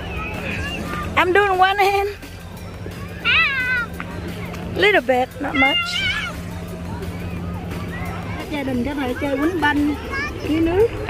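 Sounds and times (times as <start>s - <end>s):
child squealing cry: 3.2s - 3.9s, 5.6s - 6.4s
child speaking: 8.3s - 11.0s.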